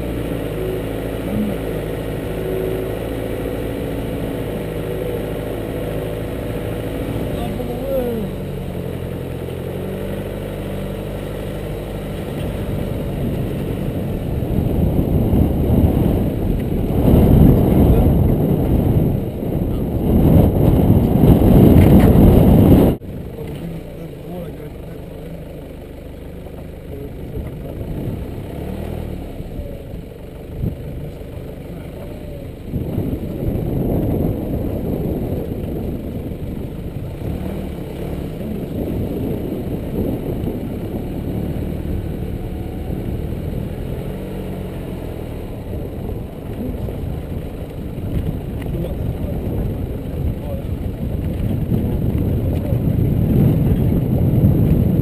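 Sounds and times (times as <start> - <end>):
vehicle engine running: 0.0 - 55.0
wind buffeting microphone: 11.2 - 23.1, 27.2 - 55.0.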